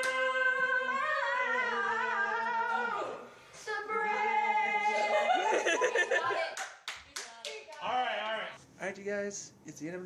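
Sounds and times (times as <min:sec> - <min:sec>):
hand claps: 0:06.6 - 0:08.4.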